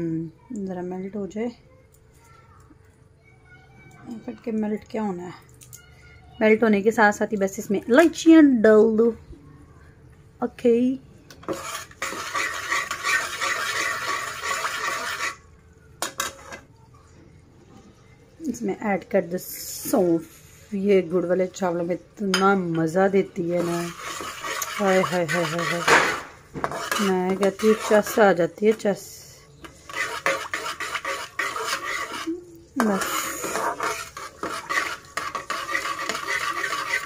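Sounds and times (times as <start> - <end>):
metal spatula scraping a pan: 11.4 - 15.4, 16.0 - 16.7, 19.9 - 37.0.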